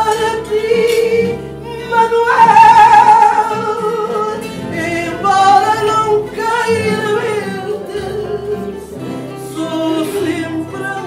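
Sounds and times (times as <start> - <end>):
guitars playing: 0.0 - 11.0
woman singing a long note: 2.2 - 4.2.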